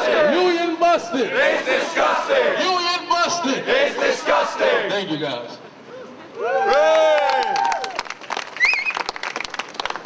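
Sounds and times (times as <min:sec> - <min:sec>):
crowd clapping: 0:06.6 - 0:10.0.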